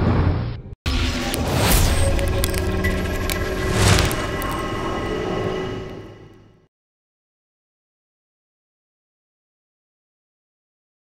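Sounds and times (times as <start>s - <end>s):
deep dark drone: 0.9s - 6.6s
whooshing swell: 1.2s - 6.6s.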